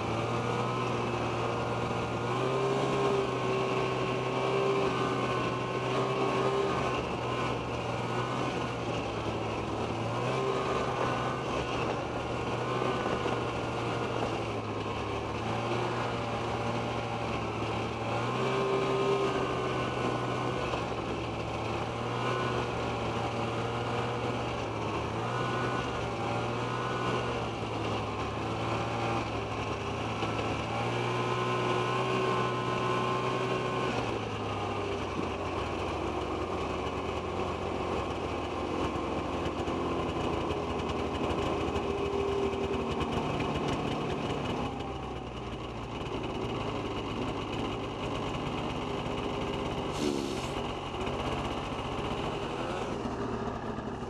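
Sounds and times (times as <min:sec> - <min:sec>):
snowmobile engine running: 0:00.0 - 0:54.0.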